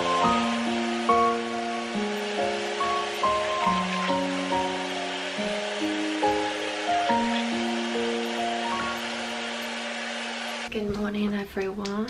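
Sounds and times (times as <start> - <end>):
background music note: 0.0 - 10.7
tap water running into sink: 0.0 - 10.7
woman speaking: 10.7 - 12.0.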